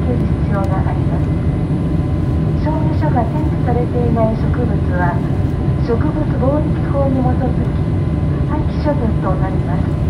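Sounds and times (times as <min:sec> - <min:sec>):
airliner cabin rumble: 0:00.0 - 0:10.0.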